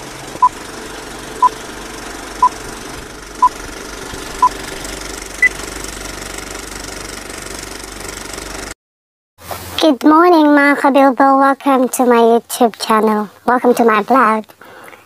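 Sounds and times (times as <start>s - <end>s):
projector whir and crackle: 0.0s - 8.7s.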